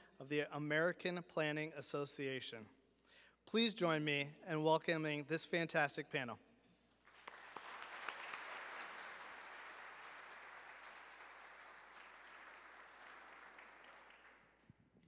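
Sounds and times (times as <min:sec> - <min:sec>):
audience applause: 0:07.1 - 0:14.5.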